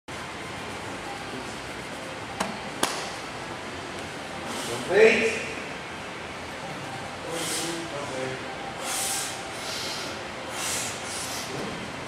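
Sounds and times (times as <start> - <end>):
gym room noise: 0.1 - 12.0.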